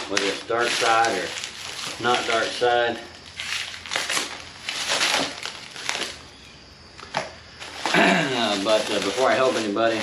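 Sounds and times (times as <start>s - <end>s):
knife slitting plastic wrap: 0.0s - 2.7s, 3.4s - 6.2s, 7.8s - 10.0s
plastic wrap crinkling: 0.0s - 6.3s, 7.0s - 10.0s.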